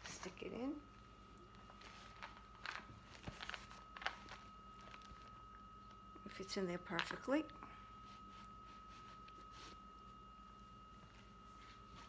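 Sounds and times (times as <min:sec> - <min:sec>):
fabric handling rustles: 0:01.6 - 0:05.4.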